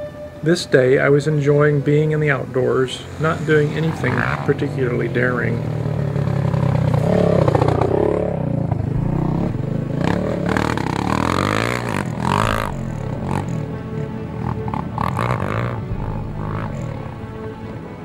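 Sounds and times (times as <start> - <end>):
background music: 0.0 - 18.0
atv engine revving: 2.9 - 17.8.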